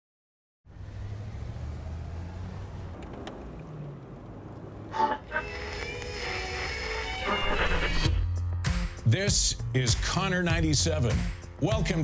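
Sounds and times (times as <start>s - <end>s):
car radio tuning bursts: 4.9s - 8.1s.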